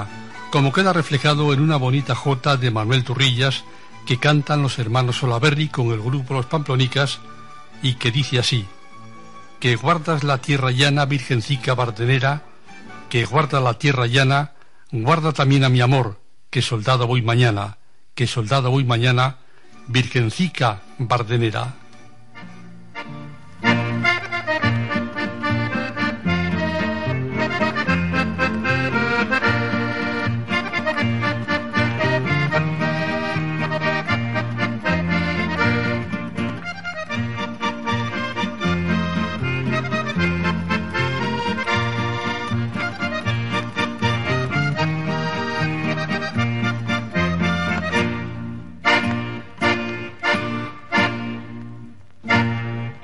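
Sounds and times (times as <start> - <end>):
accordion playing lively tune: 0.0 - 13.9, 21.9 - 53.0.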